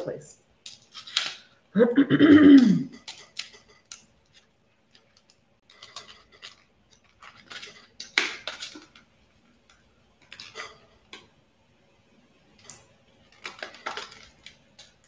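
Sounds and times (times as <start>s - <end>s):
person clearing throat: 1.8s - 3.0s.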